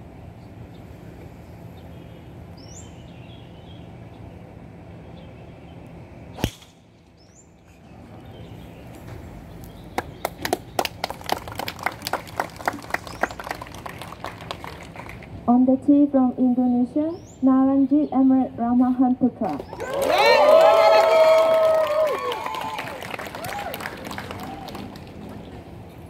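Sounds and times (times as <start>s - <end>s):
spectators clapping: 10.0s - 15.3s, 19.5s - 25.6s.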